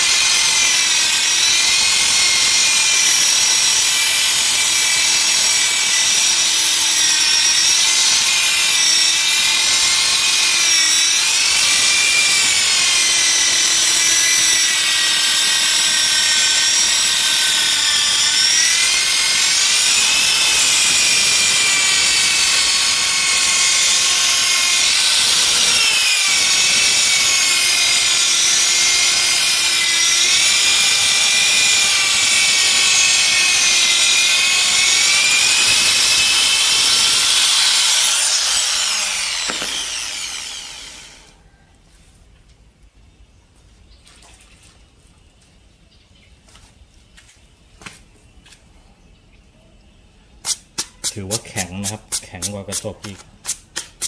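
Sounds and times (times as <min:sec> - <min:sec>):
polisher motor whine: 0:05.6 - 0:41.4.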